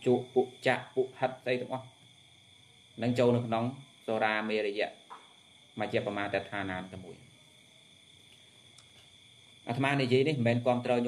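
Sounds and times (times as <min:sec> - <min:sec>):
man speaking: 0:00.0 - 0:01.9, 0:03.0 - 0:05.0, 0:05.8 - 0:07.2, 0:09.7 - 0:11.0
crickets chirring: 0:00.0 - 0:11.0.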